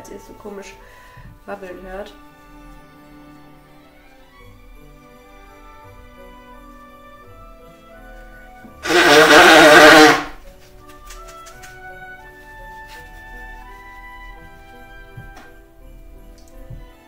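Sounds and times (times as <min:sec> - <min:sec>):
soft instrumental music: 0:00.0 - 0:17.0.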